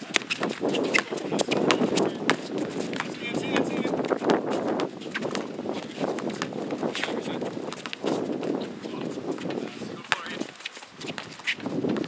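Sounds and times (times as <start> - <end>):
basketball dribbling on hard court: 0.0 - 12.0.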